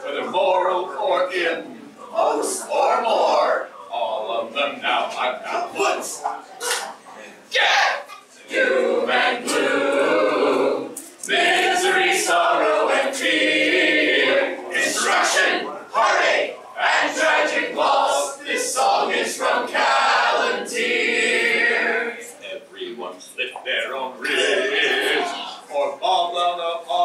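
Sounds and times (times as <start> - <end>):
group singing in chorus: 0.0 - 3.7, 8.4 - 22.3, 24.2 - 26.0.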